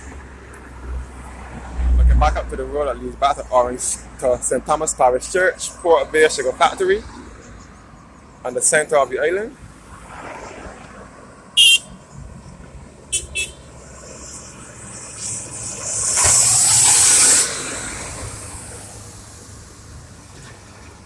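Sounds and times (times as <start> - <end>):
heavy truck passing: 0.0 - 7.4, 9.7 - 21.0
car passing: 0.0 - 8.6, 9.2 - 21.0.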